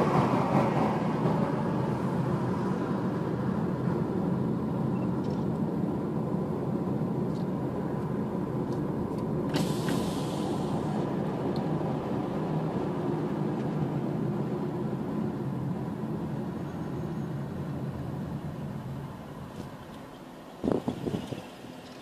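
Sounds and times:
car road and engine noise: 0.0s - 22.0s.

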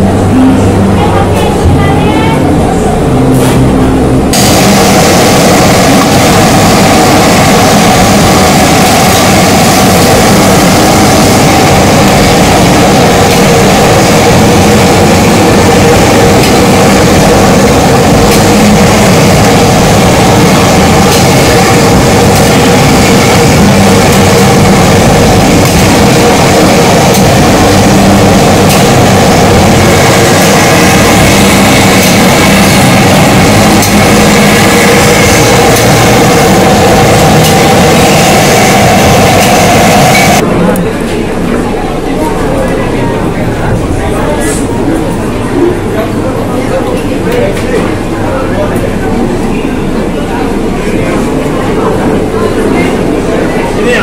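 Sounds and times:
gas stove burner rushing: 4.3s - 40.4s.

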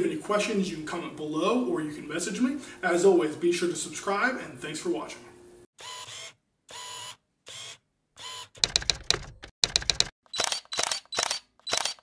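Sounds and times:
mechanical clicks: 8.6s - 12.0s.

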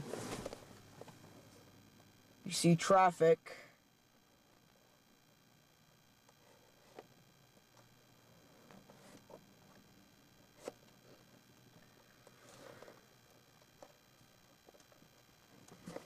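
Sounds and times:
soft rustle: 0.0s - 1.7s
faint low hum: 0.0s - 16.0s.

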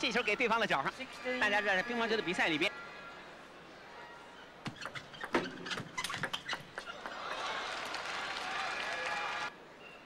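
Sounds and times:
crowd cheering and applauding: 6.9s - 9.5s.

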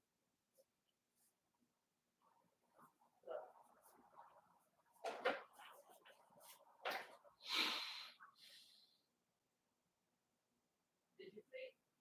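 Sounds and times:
man breathing out through nose: 7.4s - 9.0s
faint breath: 7.4s - 9.1s.

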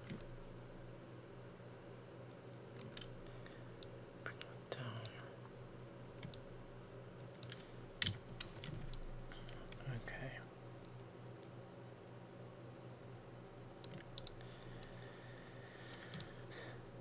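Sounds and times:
computer mouse clicks: 0.0s - 0.4s, 2.3s - 4.0s, 6.2s - 6.5s, 7.4s - 9.9s, 13.8s - 15.0s, 15.9s - 16.4s
steady low hum: 0.0s - 17.0s.

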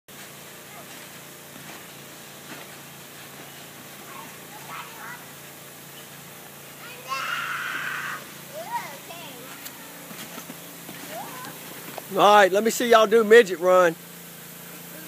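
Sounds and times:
steady hiss: 0.1s - 15.0s
child shouting: 4.1s - 5.3s, 6.8s - 10.0s, 11.1s - 11.6s
faint children's calls: 6.8s - 10.2s.

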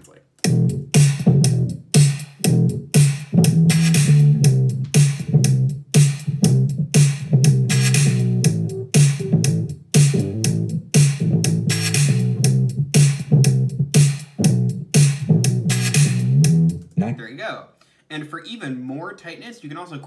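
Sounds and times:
dirty bass loop: 0.0s - 17.2s
drum loop: 0.0s - 17.5s.

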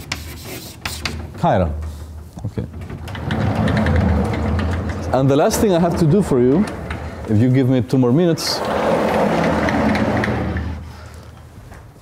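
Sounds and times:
chalk tapping and scraping on blackboard: 0.0s - 2.0s.

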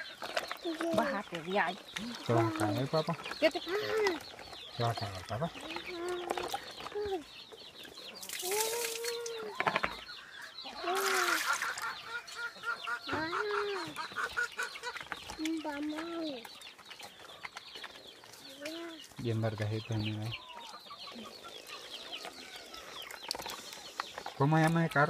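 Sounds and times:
hens clucking: 0.0s - 8.2s, 9.2s - 25.0s
hens calling: 0.0s - 16.4s, 18.2s - 25.0s.

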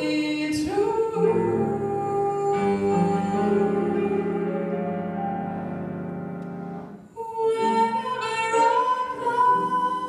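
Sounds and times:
woman singing jazz ballad: 0.0s - 5.2s, 7.1s - 10.0s
piano accompaniment: 0.0s - 10.0s.

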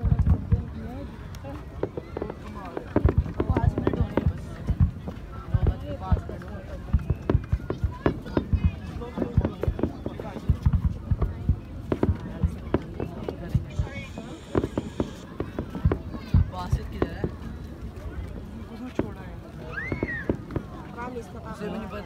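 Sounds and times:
fireworks banging: 0.0s - 17.6s, 18.9s - 21.2s
crowd chattering: 0.0s - 22.0s.

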